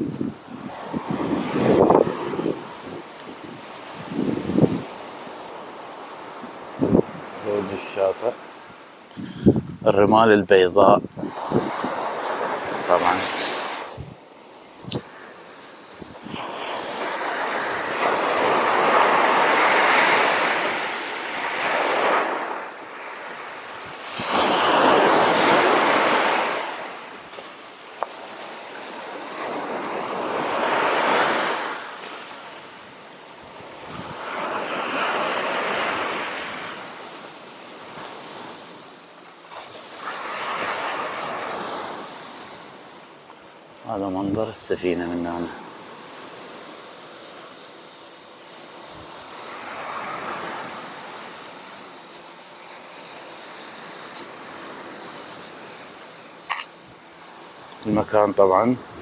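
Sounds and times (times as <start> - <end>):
sea waves breaking on beach: 0.0 - 59.0.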